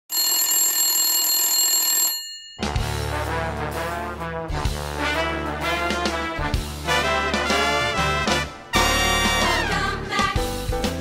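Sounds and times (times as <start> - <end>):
electric bell ringing: 0.1 - 2.8.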